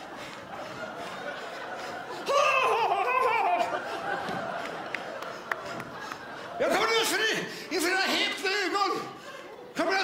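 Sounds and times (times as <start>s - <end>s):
person laughing loudly: 1.8s - 4.3s.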